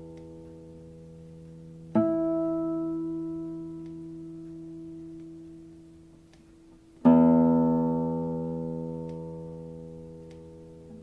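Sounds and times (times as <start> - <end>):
classical guitar chords: 0.0 - 11.0.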